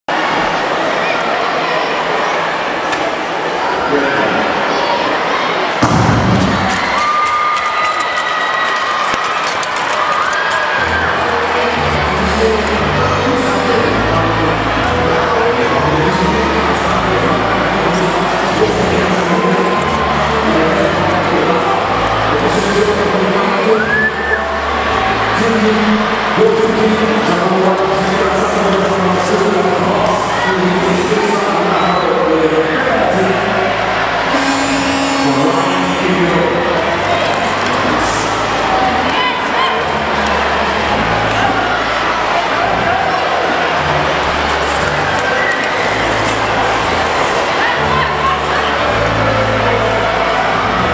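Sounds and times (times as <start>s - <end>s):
crowd cheering and clapping: 5.7s - 50.9s
held horn-like tones: 33.7s - 42.1s.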